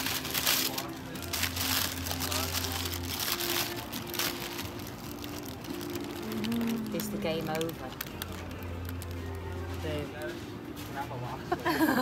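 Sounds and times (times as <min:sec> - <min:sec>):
paper wrapping crinkling: 0:00.0 - 0:10.4
background music with held notes: 0:00.0 - 0:12.0.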